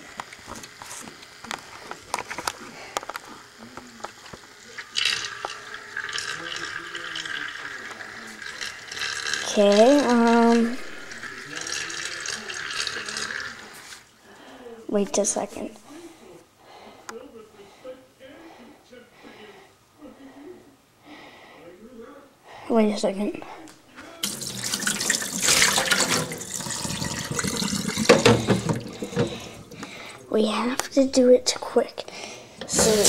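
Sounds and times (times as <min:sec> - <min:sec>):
tap water splashing into sink: 0:24.2 - 0:29.9.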